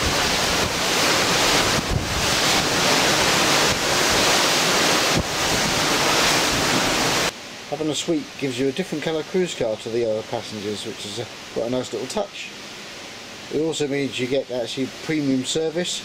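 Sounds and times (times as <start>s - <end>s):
wind buffeting microphone: 0.0s - 7.3s
sea rushing along ship: 0.0s - 16.0s.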